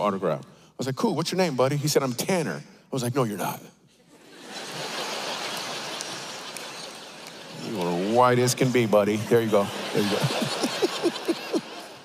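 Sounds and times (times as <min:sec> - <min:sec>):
audience laughing and clapping: 0:04.1 - 0:12.0.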